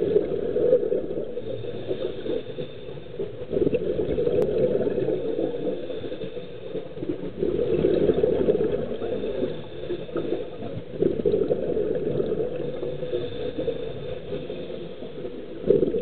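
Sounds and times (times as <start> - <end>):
exhaled bubbles underwater: 0.0 - 16.0
diver's regulator breathing: 1.3 - 16.0.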